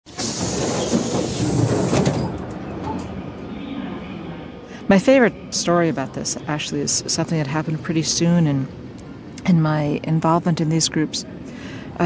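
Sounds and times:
passenger train rumbling on track: 0:00.0 - 0:12.0.

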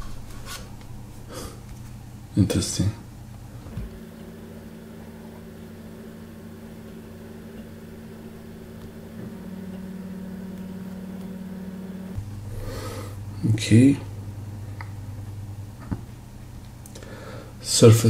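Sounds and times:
low background hum: 0:00.0 - 0:18.0.

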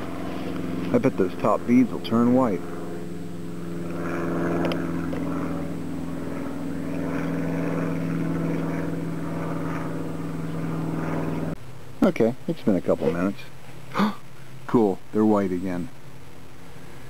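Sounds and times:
propeller aircraft engine drone: 0:00.0 - 0:17.0.

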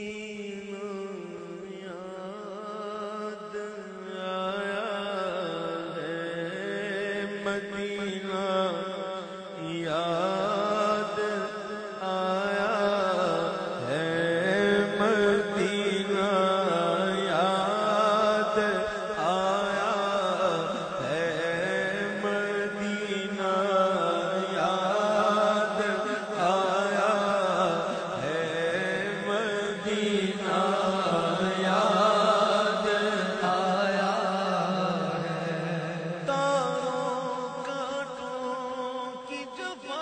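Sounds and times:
man chanting devotional poem: 0:00.0 - 0:40.0.

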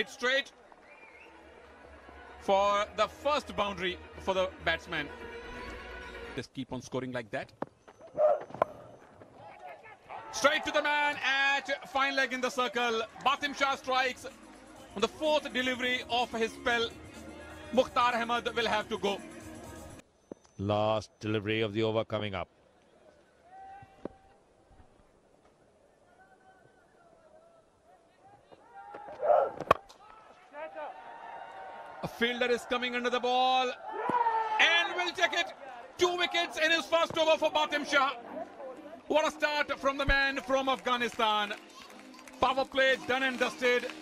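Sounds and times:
stadium crowd voices: 0:00.0 - 0:05.0, 0:08.6 - 0:19.9, 0:25.6 - 0:44.0
loud shout: 0:23.4 - 0:24.0, 0:33.8 - 0:36.6
cricket bat hitting ball: 0:29.6 - 0:29.9.

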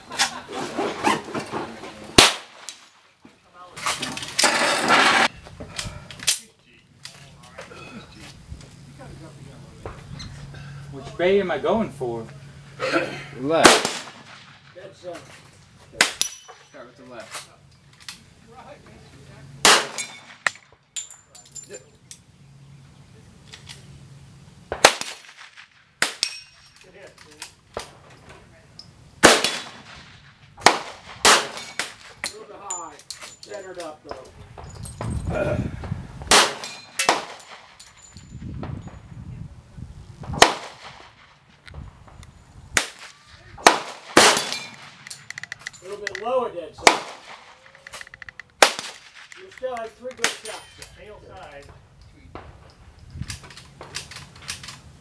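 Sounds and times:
pistol shot: 0:02.2 - 0:02.8, 0:13.6 - 0:14.7, 0:19.6 - 0:20.6, 0:24.7 - 0:26.4, 0:29.2 - 0:32.0, 0:36.3 - 0:37.8, 0:40.4 - 0:41.2, 0:42.8 - 0:45.0, 0:46.8 - 0:47.6, 0:48.6 - 0:49.4
person murmuring: 0:35.3 - 0:35.8.

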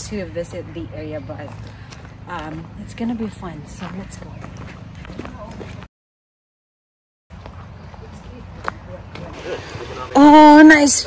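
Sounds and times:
faint footsteps on dirt trail: 0:01.2 - 0:05.9, 0:07.3 - 0:09.3.

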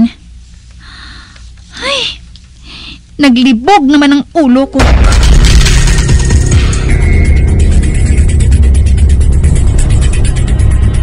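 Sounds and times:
dramatic music with pulsing bass: 0:04.8 - 0:11.0.

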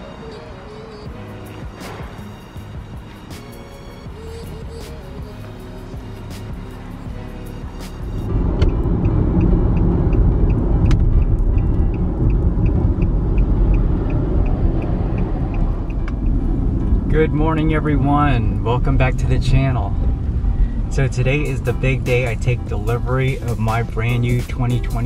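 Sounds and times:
background music: 0:00.0 - 0:25.0
car road and engine rumble: 0:00.0 - 0:25.0
turn signal ticking: 0:00.0 - 0:25.0.

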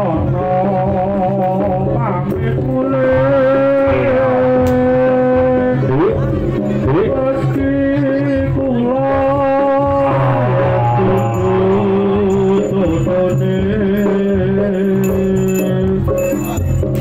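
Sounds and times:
percussion: 0:00.0 - 0:17.0
wavering held melody: 0:10.1 - 0:17.0.

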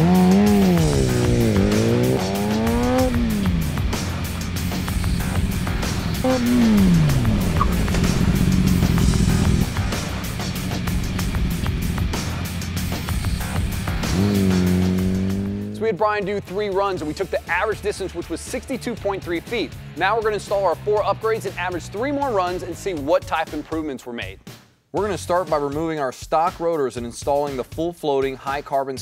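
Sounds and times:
music with steady beat: 0:00.0 - 0:15.8
motorcycle engine revving: 0:00.0 - 0:16.0.

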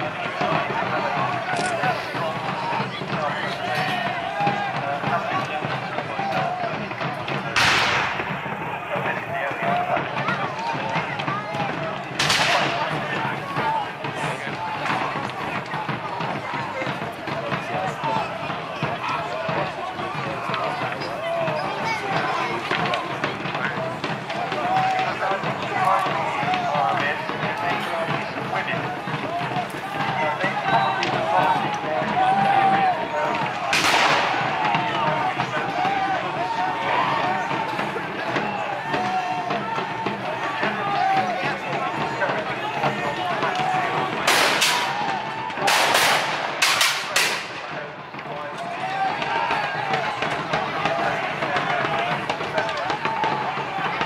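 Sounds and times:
men shouting and yelling: 0:00.0 - 0:54.0
sharp clacks: 0:01.2 - 0:02.6, 0:43.4 - 0:50.9
muskets firing: 0:07.5 - 0:09.0, 0:11.6 - 0:15.9, 0:29.8 - 0:36.0, 0:43.4 - 0:47.9.

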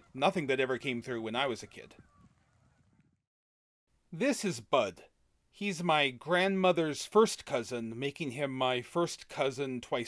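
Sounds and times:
distant geese honking: 0:01.4 - 0:03.0.

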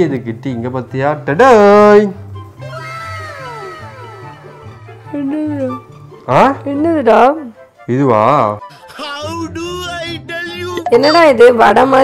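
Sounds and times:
background music: 0:00.0 - 0:12.0
woman mock-crying wail: 0:02.6 - 0:05.2.

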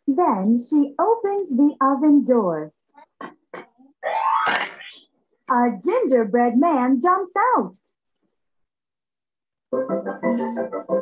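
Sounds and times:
cartoon blips: 0:04.0 - 0:05.0
rising sweeping pop-up effect: 0:04.0 - 0:05.1.

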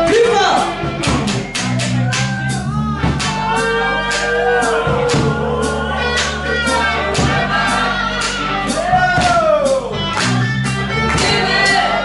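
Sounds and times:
live rock band playing: 0:00.0 - 0:12.0
woman singing: 0:11.1 - 0:12.0.

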